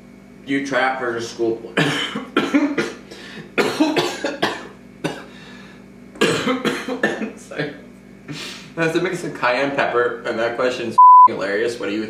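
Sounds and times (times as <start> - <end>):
man coughing: 1.8 - 5.4, 6.2 - 7.8.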